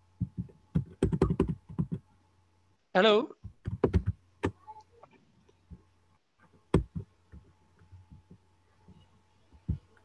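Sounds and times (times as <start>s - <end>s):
faint low hum: 0.0s - 10.0s
keyboard typing: 0.2s - 2.0s, 3.5s - 4.6s, 6.5s - 10.0s.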